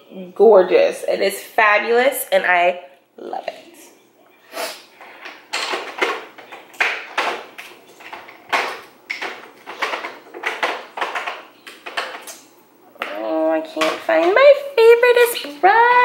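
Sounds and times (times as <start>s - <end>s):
rustling and clattering brushes: 4.9s - 12.5s.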